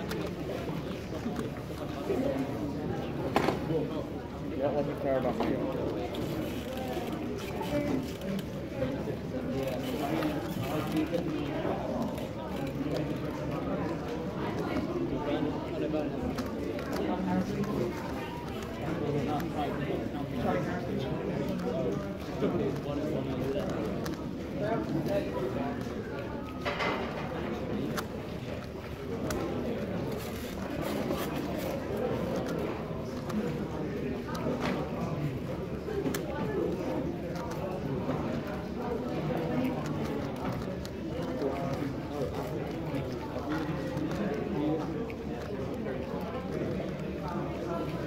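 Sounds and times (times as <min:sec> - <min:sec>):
people chattering in a hall: 0:00.0 - 0:48.0.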